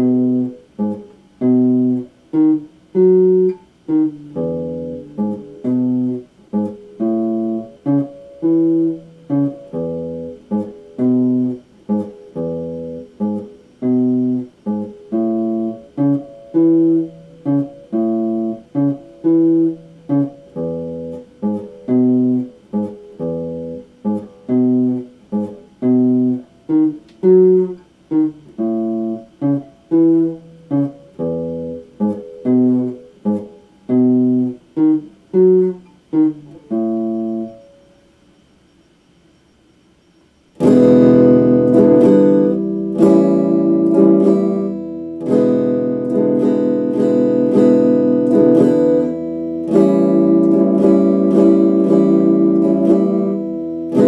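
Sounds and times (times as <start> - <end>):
electric guitar clipped chords: 0.0 - 38.0, 40.6 - 54.0.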